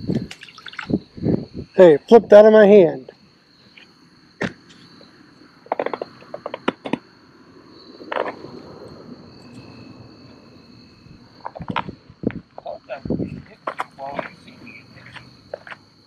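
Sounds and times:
insect chirring: 0.0s - 16.0s.

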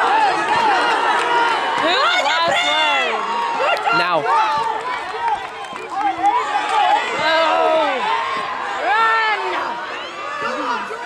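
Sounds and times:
crowd chatter: 0.0s - 11.0s
spectators calling out: 0.0s - 11.0s.

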